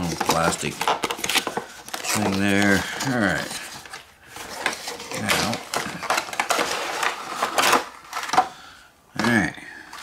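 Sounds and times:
plastic packaging crinkling: 0:00.0 - 0:08.6.

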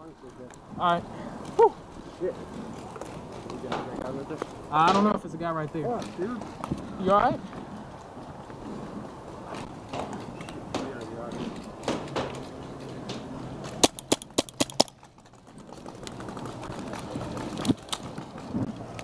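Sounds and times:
paintball marker shots: 0:13.8 - 0:15.0.

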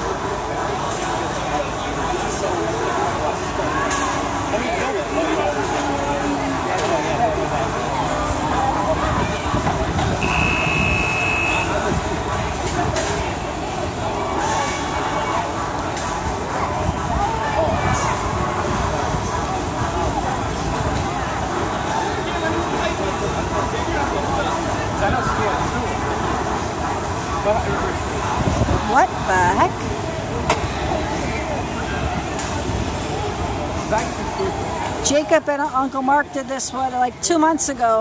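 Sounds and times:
distant voices: 0:00.0 - 0:38.0
outdoor background noise: 0:00.0 - 0:38.0
electronic buzzer beep: 0:10.2 - 0:11.7.

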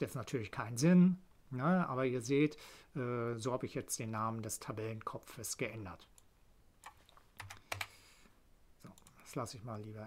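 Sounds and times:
computer keyboard keystrokes: 0:06.8 - 0:07.9.

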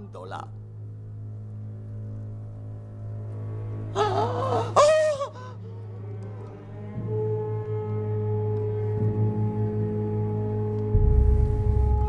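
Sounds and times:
low steady hum: 0:00.0 - 0:12.0
woman screaming: 0:04.0 - 0:05.6.

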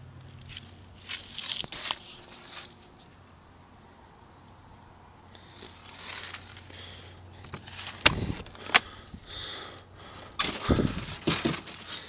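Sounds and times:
door handling and rustling: 0:07.4 - 0:08.9, 0:10.4 - 0:12.0.

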